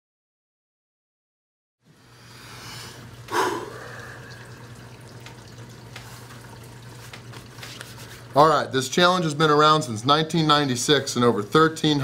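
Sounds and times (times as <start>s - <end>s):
steady low hum: 1.9s - 7.0s.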